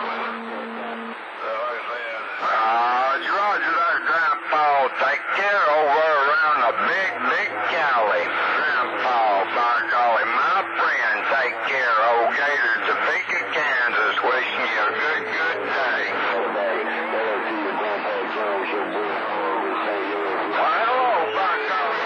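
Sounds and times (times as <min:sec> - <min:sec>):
low steady tones: 0:00.0 - 0:22.0
voices over radio speaker: 0:00.0 - 0:22.0.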